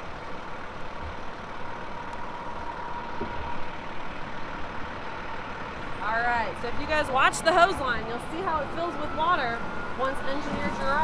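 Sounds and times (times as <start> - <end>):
outdoor background noise: 0.0 - 11.0
truck engine idling: 0.0 - 11.0.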